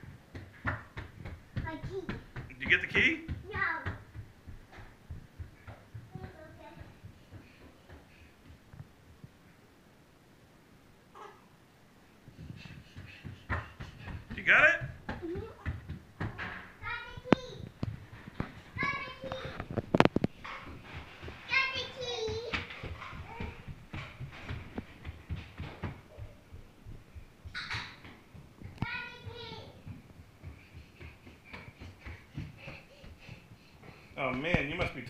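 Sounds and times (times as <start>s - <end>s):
bare feet running on hardwood floor: 0.0s - 9.4s, 12.2s - 35.0s
child heavy breathing: 6.4s - 8.7s, 12.0s - 14.4s, 28.9s - 34.2s.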